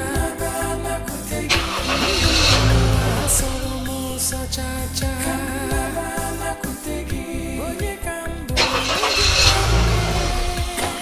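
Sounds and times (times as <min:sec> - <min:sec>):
background music: 0:00.0 - 0:11.0
car engine starting and running: 0:00.0 - 0:11.0.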